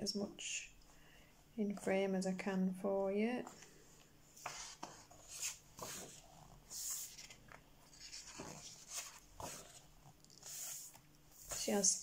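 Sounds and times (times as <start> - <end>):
paper page rustling: 4.4 - 12.0.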